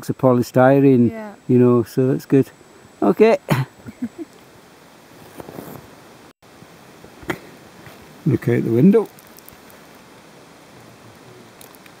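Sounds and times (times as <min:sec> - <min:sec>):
faint steady hiss: 0:00.0 - 0:12.0
light rustles and clicks: 0:11.1 - 0:12.0.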